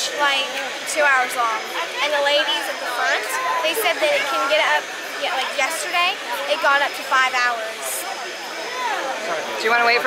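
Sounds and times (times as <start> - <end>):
girl talking: 0.0 - 8.0
crowd chatter: 0.0 - 10.0
steady background noise: 0.0 - 10.0.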